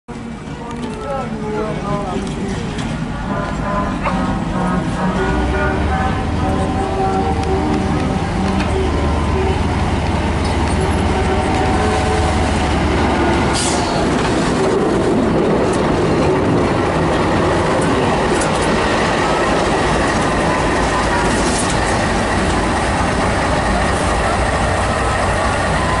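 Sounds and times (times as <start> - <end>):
diesel locomotive engine drone: 0.1 - 26.0
train wheels rumbling on rails: 0.1 - 26.0.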